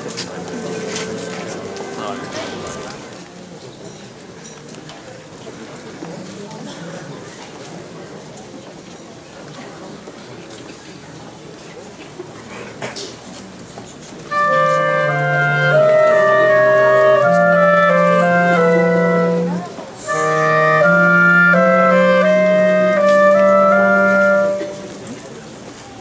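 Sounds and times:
clarinets playing slow music: 0:00.3 - 0:03.1, 0:14.3 - 0:25.2.

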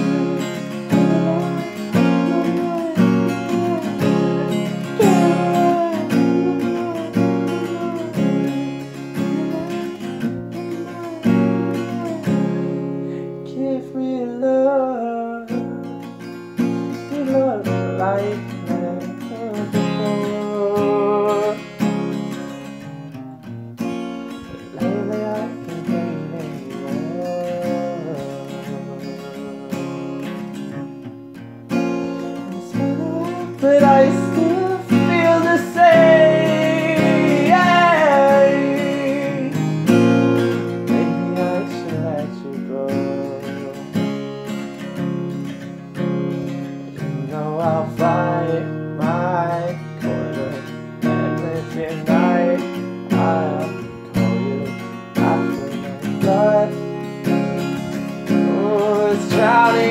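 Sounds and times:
person singing wordlessly: 0:00.0 - 0:15.9, 0:16.9 - 0:21.8, 0:24.4 - 0:31.0, 0:32.0 - 0:44.1, 0:47.0 - 0:59.9
acoustic guitar strumming: 0:00.0 - 0:59.9.

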